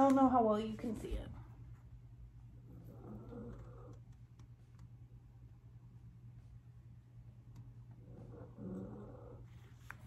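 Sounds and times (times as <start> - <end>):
steady low hum: 0.0 - 10.0
soft handling rustle: 9.5 - 10.0.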